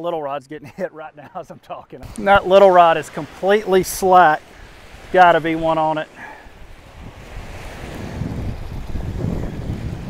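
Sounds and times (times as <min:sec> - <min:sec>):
small surf breaking: 0:02.0 - 0:10.0
wind buffeting microphone: 0:02.0 - 0:10.0.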